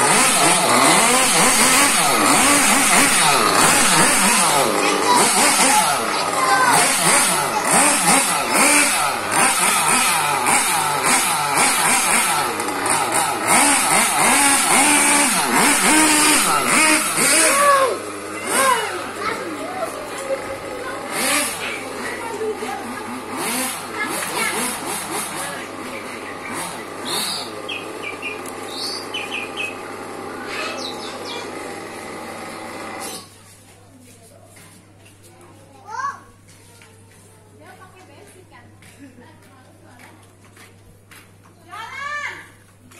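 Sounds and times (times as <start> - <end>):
small nitro engine revving: 0.0 - 33.4.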